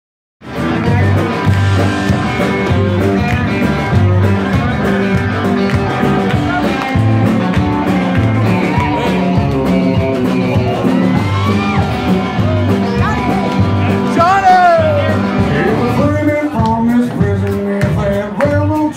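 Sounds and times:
bass line: 0.4s - 18.9s
drums: 0.4s - 18.9s
electric guitar: 0.4s - 18.9s.

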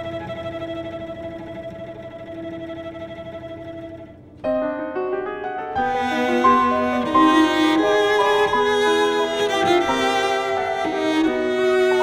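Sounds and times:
cello sustained notes: 0.0s - 4.5s, 5.7s - 12.0s
piano sustained notes: 0.0s - 12.0s.

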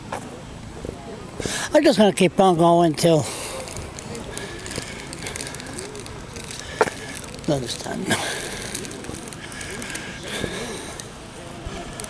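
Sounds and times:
distant voices: 0.0s - 12.0s
outdoor background noise: 0.0s - 12.0s.

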